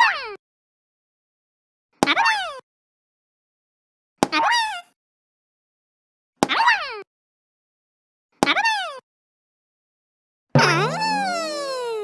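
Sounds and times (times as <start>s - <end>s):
cartoon click and bloop effect: 10.6s - 12.0s.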